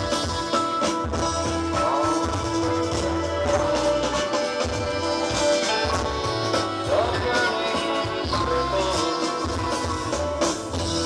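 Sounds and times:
pulsing bass notes: 0:00.0 - 0:11.0.

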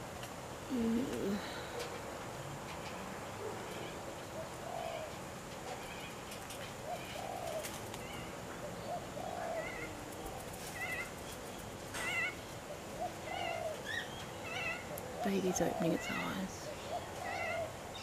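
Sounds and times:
steady outdoor hum: 0:00.0 - 0:18.0
birds cooing: 0:00.7 - 0:02.0, 0:03.4 - 0:18.0
birds chirping: 0:02.7 - 0:18.0.

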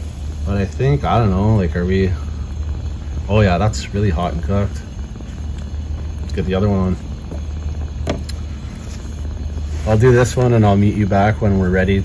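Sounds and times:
gas flames rushing: 0:00.0 - 0:12.0.

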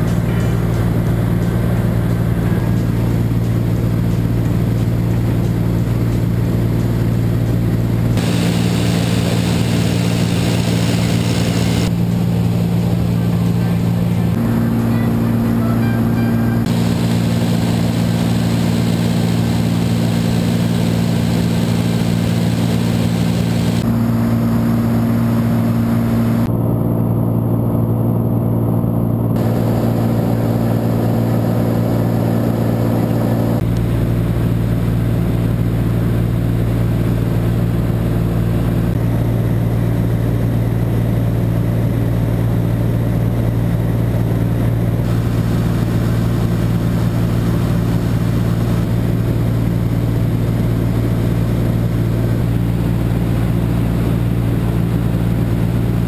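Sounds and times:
propeller aircraft engine droning: 0:00.0 - 0:56.0.

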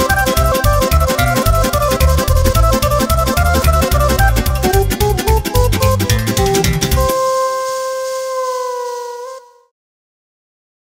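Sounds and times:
electronic keyboard held note: 0:06.9 - 0:09.7.

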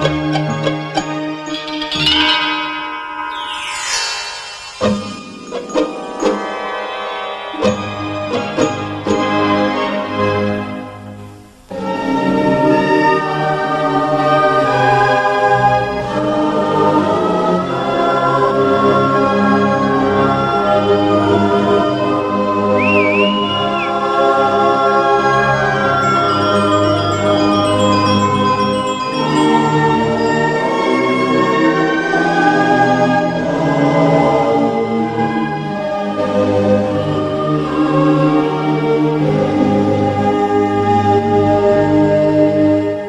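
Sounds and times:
choir singing held notes: 0:00.0 - 0:10.8, 0:11.7 - 0:43.0.

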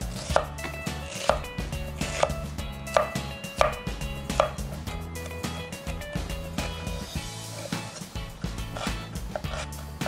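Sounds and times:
background music: 0:00.0 - 0:10.0
knife slicing onion: 0:00.0 - 0:10.0
knife knocking on wooden board: 0:02.2 - 0:04.8.

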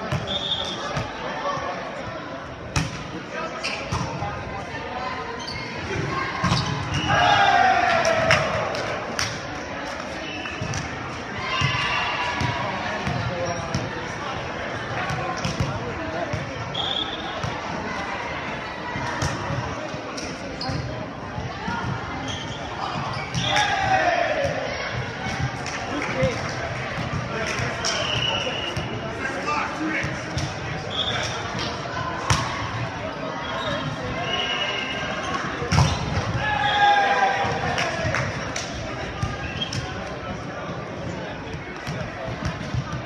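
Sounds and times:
players talking: 0:00.0 - 0:43.0
players shouting: 0:05.9 - 0:09.2, 0:22.8 - 0:26.6, 0:30.9 - 0:40.1.

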